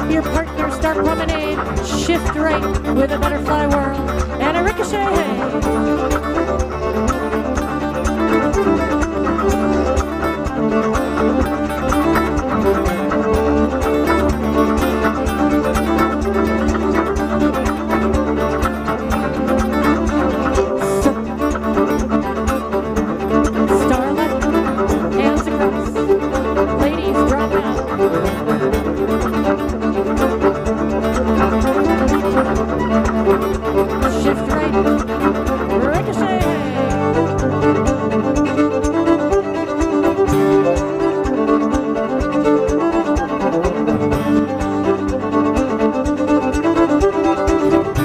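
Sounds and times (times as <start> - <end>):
fiddle-led dance tune: 0.0 - 48.0.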